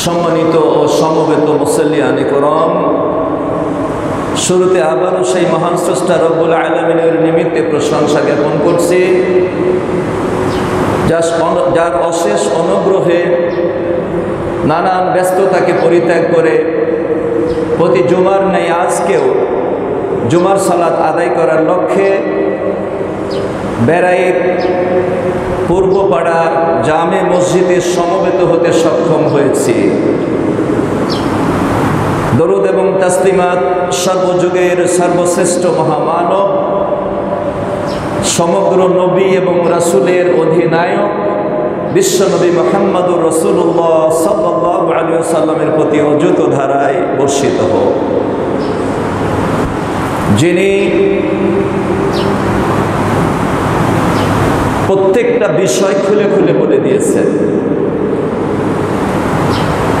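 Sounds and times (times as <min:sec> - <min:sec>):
steady rushing noise: 0:00.0 - 0:43.9, 0:47.4 - 0:55.4, 0:56.0 - 1:00.0.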